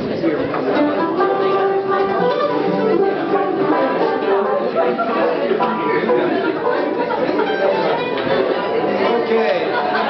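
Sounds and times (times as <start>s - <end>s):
acoustic bluegrass string band: 0.0s - 10.0s.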